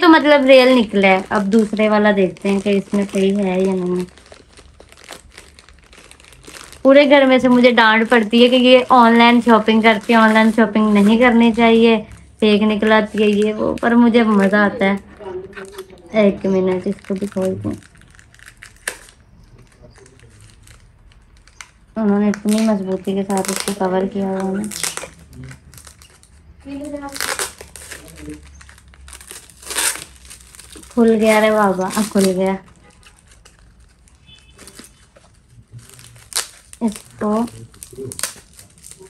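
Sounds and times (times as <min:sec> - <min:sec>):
plastic mailer bag crinkling: 0:00.0 - 0:39.0
sharp packaging crackle: 0:00.0 - 0:39.0.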